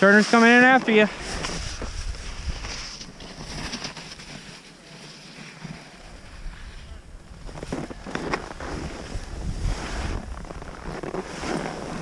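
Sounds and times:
skis scraping on snow: 0.0s - 12.0s
wind rumbling on microphone: 1.1s - 4.4s, 6.0s - 12.0s.

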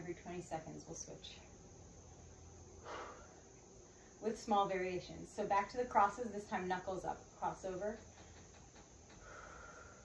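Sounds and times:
faint steady hum: 0.0s - 10.0s
soft breath out: 2.8s - 4.2s, 9.2s - 10.0s.

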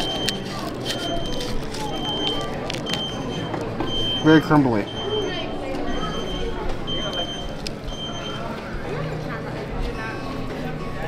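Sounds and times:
plastic spork scraping food: 0.0s - 3.1s
background chatter: 0.0s - 11.0s.

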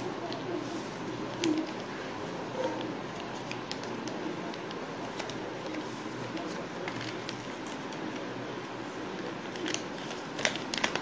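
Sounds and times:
sharp paper crackles: 0.0s - 11.0s.

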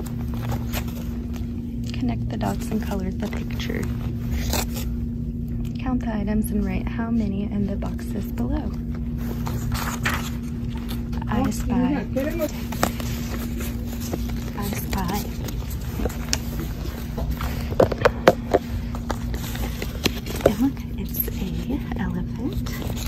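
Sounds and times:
book pages flipping: 0.0s - 5.7s, 7.6s - 23.0s
steady low hum: 0.0s - 23.0s.

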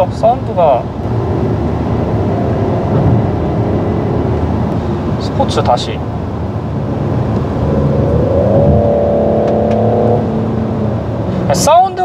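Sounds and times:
road and tyre noise: 0.0s - 12.0s
car engine accelerating: 0.6s - 11.8s.

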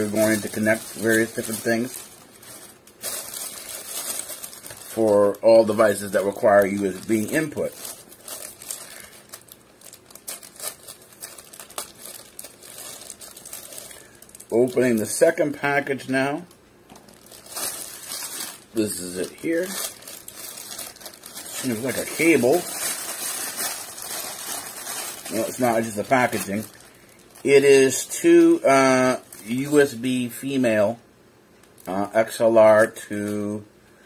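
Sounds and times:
packaging crinkling: 0.0s - 29.8s.

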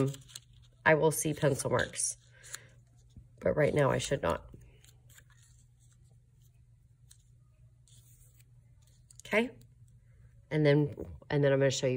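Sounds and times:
paper rustling: 0.0s - 3.4s, 4.0s - 9.3s.

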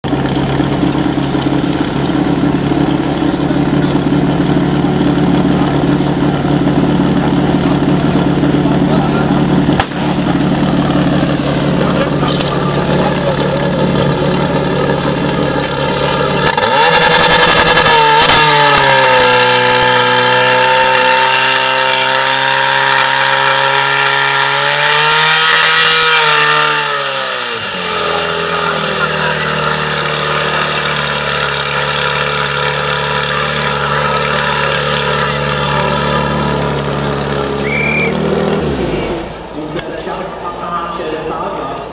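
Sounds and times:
pump engine running: 0.0s - 40.4s.

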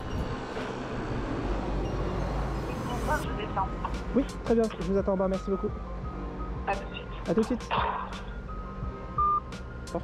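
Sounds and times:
road rumble: 0.0s - 10.0s.

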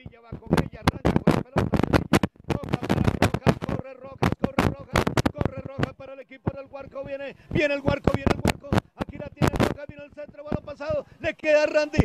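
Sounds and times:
fast sports commentary: 0.0s - 12.0s.

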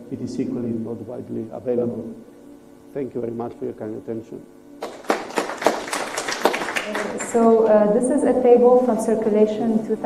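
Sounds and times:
audience applauding: 4.8s - 7.4s.

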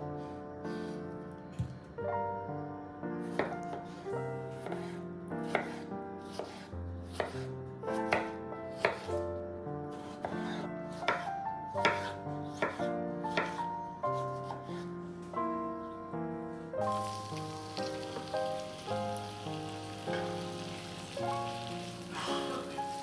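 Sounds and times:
soft background music: 0.0s - 23.0s.

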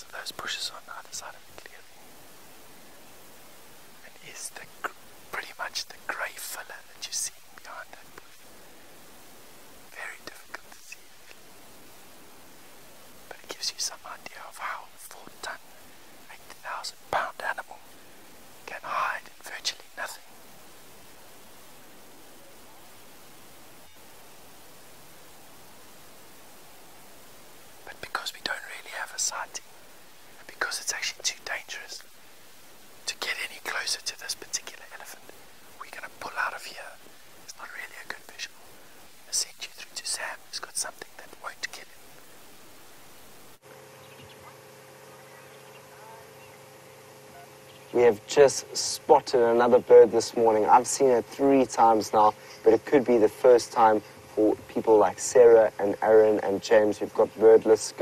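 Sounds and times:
whispered speech: 0.0s - 1.9s, 4.0s - 8.4s, 9.9s - 11.0s, 13.3s - 15.6s, 16.3s - 17.8s, 18.6s - 20.2s, 27.8s - 29.6s, 30.4s - 32.0s, 33.0s - 35.2s, 35.8s - 38.6s, 39.3s - 41.9s.

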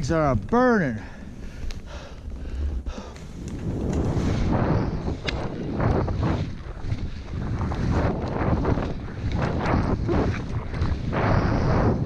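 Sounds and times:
wind buffeting microphone: 0.0s - 12.0s
skis scraping through snow: 1.9s - 12.0s.

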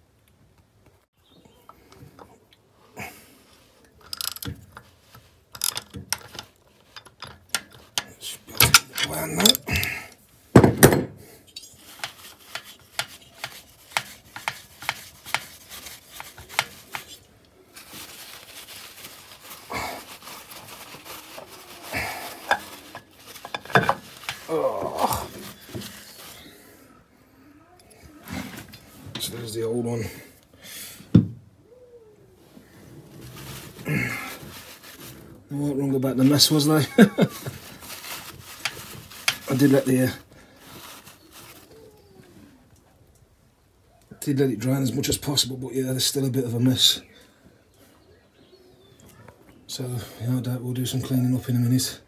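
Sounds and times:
ratchet wrench metal clicks: 4.0s - 4.6s, 5.5s - 9.1s.

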